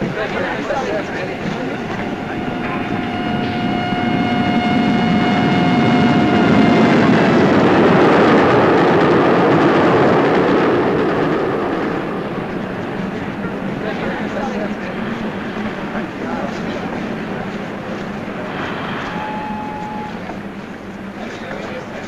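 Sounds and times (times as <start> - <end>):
rumble of moving train: 0.0 - 22.0
train whistle: 1.3 - 8.0, 18.5 - 20.4.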